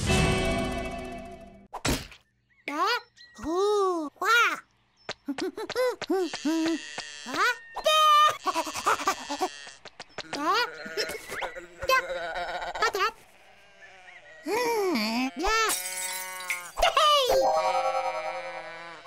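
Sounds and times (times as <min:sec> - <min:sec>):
cartoon chick vocal: 0:05.2 - 0:09.5
cartoon sheep bleating: 0:06.0 - 0:19.0.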